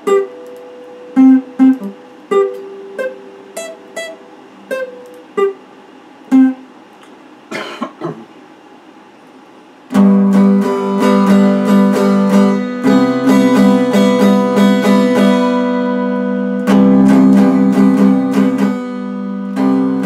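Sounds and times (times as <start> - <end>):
electric guitar strummed chords: 0.0 - 5.7, 6.3 - 6.7, 9.9 - 20.0
scratchy guitar noises: 0.0 - 5.7, 9.9 - 20.0.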